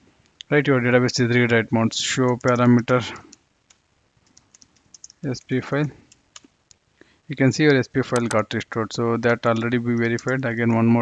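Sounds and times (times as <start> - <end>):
person speaking: 0.4 - 3.4, 5.0 - 6.5, 7.2 - 11.0
keystrokes on computer keyboard: 2.2 - 5.3, 9.2 - 10.5.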